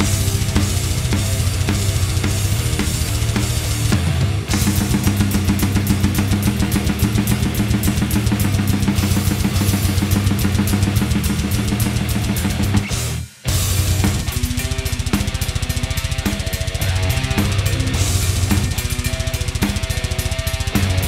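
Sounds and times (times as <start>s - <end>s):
guitar and bass: 0.0s - 21.0s
heavy metal drumming: 0.0s - 21.0s.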